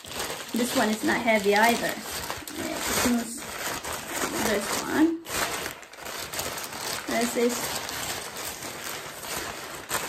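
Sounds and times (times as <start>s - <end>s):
paper bag rustling and crinkling: 0.0s - 10.0s.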